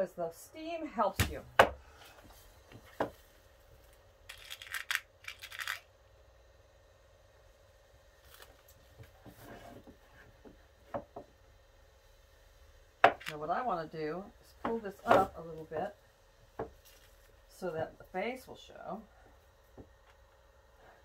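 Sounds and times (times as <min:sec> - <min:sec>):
small scrapes and clicks: 0:04.3 - 0:05.9.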